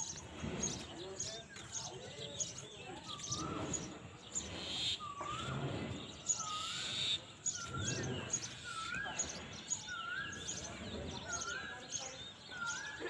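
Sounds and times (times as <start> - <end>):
high bird chirps: 0.0 - 13.0
bird whistled call: 3.0 - 13.0.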